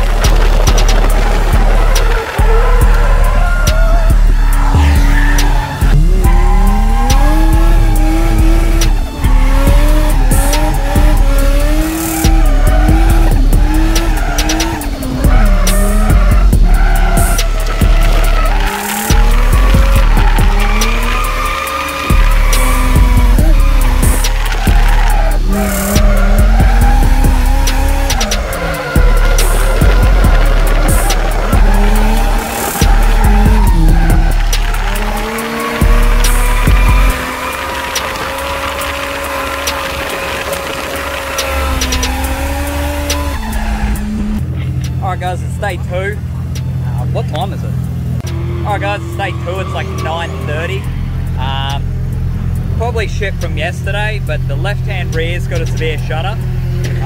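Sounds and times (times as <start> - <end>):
car engine revving: 0.0 - 57.0
tyres squealing: 0.0 - 57.0.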